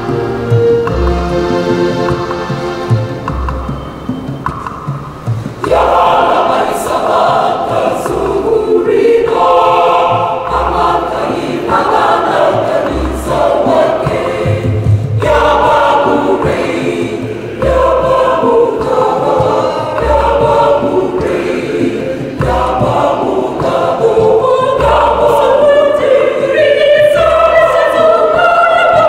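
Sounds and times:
choir singing in parts: 0:00.0 - 0:29.0.

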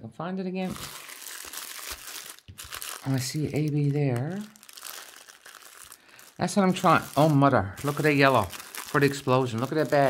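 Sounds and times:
plastic bags crinkling: 0:00.6 - 0:10.0.

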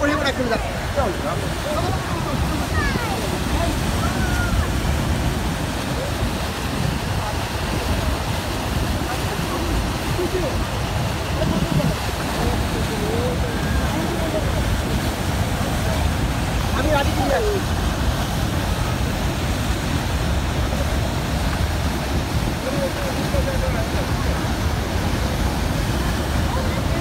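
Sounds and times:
faint voices of people: 0:00.0 - 0:27.0
waterfall rushing: 0:00.0 - 0:27.0.

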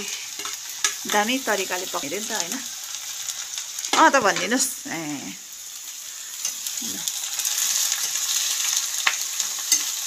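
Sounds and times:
mushrooms sizzling in a wok: 0:00.0 - 0:10.0.

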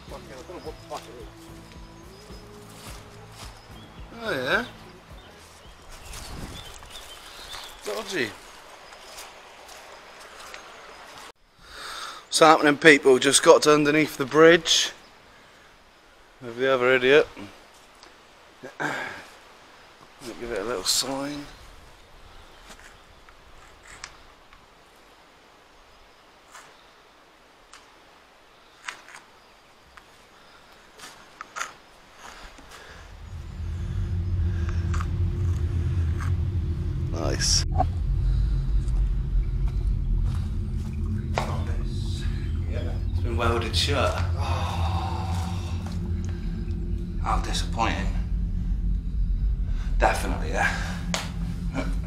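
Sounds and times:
outdoor background hiss: 0:00.0 - 0:52.0
loud low rumble with hum: 0:32.9 - 0:52.0.

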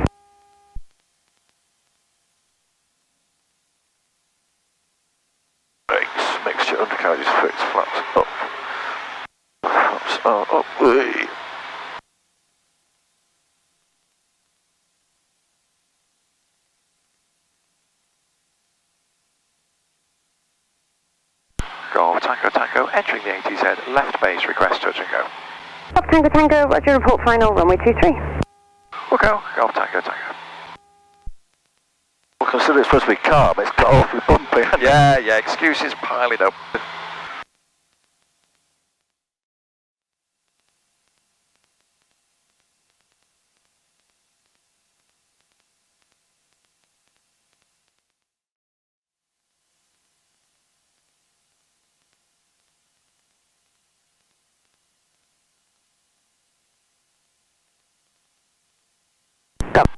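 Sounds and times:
faint steady hum: 0:00.0 - 0:39.2, 0:40.2 - 0:48.2, 0:49.3 - 0:59.9
person talking over headset: 0:05.9 - 0:08.5, 0:09.6 - 0:11.3, 0:21.9 - 0:25.3, 0:25.9 - 0:28.3, 0:29.0 - 0:30.4, 0:32.4 - 0:36.6.

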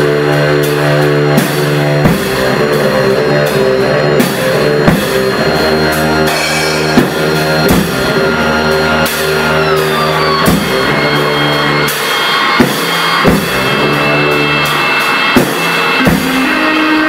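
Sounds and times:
droning keyboard chord: 0:00.0 - 0:11.9
drum and cymbal hits: 0:00.0 - 0:17.0
high sliding tone: 0:00.0 - 0:17.0.

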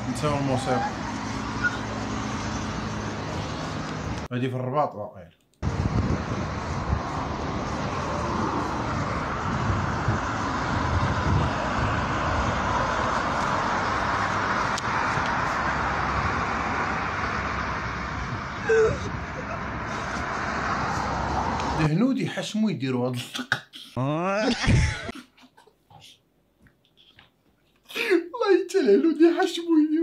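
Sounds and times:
road traffic rushing: 0:00.0 - 0:04.3, 0:05.6 - 0:21.9.

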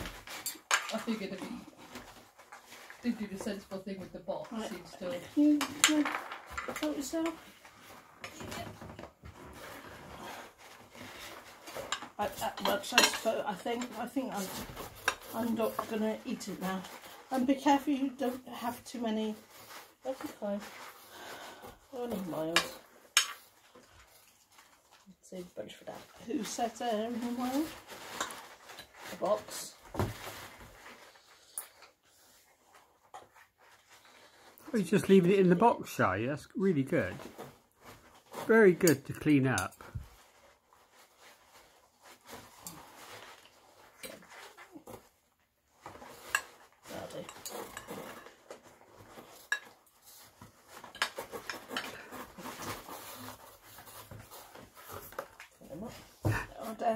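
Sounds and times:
dog rummaging through paper: 0:13.2 - 0:35.5, 0:39.8 - 0:56.9
packing paper rustling: 0:37.1 - 0:56.9.

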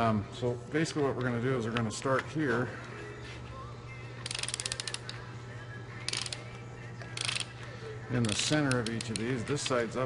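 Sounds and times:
steady low hum: 0:00.0 - 0:10.0
hand ratchet clicking: 0:04.2 - 0:05.2, 0:06.1 - 0:07.5, 0:08.1 - 0:09.9.

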